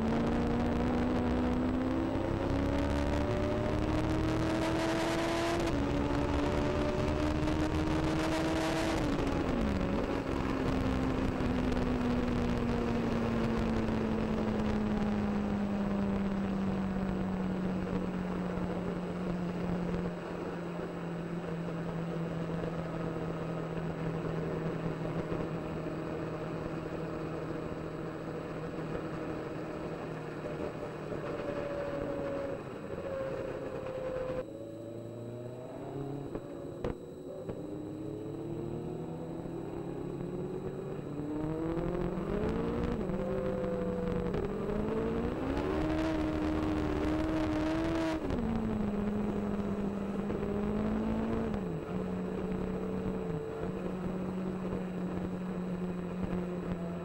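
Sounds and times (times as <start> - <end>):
race car engine revving: 0.0 - 16.0, 22.5 - 57.0.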